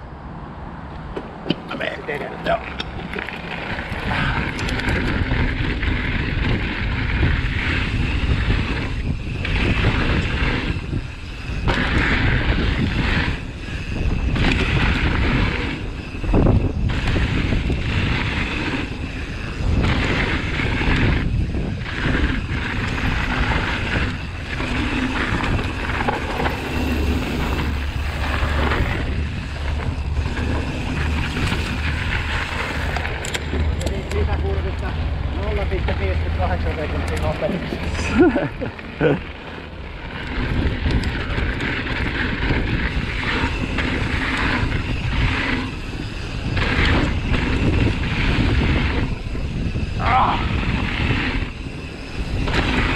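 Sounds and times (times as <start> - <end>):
wind buffeting microphone: 0.0 - 52.9
bike tyres rumbling on dirt: 1.0 - 52.9.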